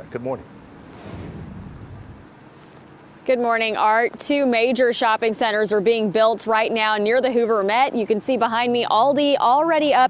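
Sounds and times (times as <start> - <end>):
whoosh with low rumble: 0.6 - 2.9
wind and rain: 0.8 - 2.6.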